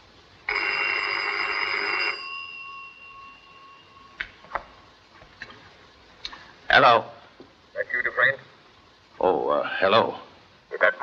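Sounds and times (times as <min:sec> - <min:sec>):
telephone bell ringing: 0:00.5 - 0:04.2.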